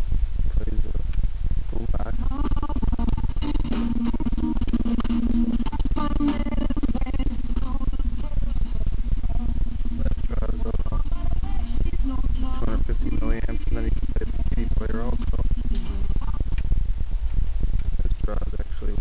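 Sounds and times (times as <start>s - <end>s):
radio music: 0.5s - 19.0s
voice over radio: 9.9s - 16.3s.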